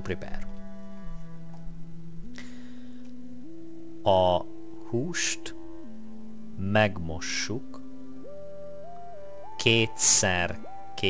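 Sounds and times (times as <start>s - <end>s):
soft background music: 0.0s - 11.0s
person speaking: 4.0s - 5.9s, 6.6s - 7.8s, 9.5s - 11.0s.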